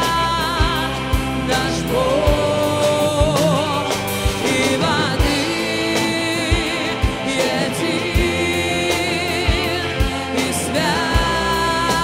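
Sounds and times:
instrumental backing: 0.0 - 12.0
low beats: 0.0 - 12.0
person singing worship song: 0.0 - 12.0.

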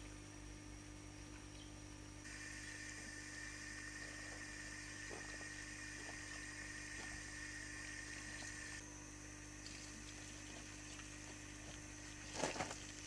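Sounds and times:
faint background hum and hiss: 0.0 - 13.0
high steady tone: 2.3 - 9.2.

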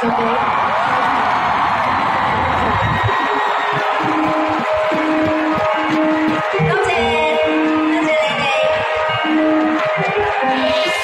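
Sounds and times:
audience cheering: 0.0 - 11.0.

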